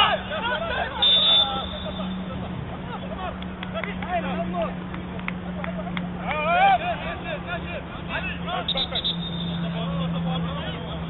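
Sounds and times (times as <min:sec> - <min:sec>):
distant footballers shouting: 0:00.0 - 0:11.0.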